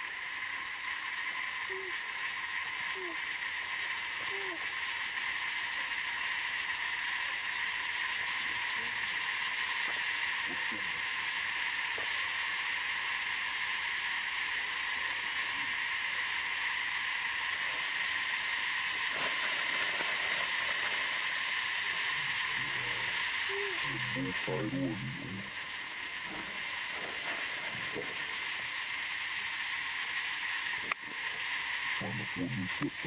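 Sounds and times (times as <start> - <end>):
insect chorus drone: 0.0 - 33.0.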